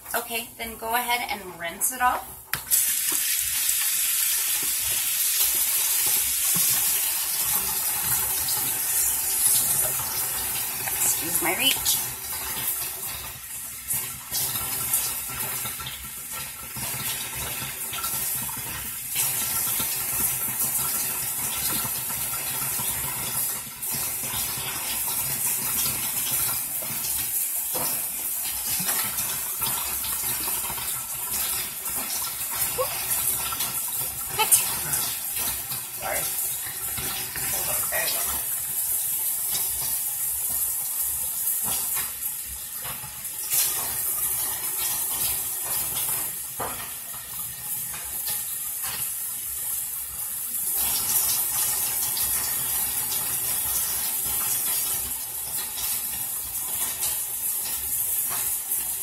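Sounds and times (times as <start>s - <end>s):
washcloth rinsing face: 2.3s - 59.0s
tap running into sink: 4.5s - 11.2s.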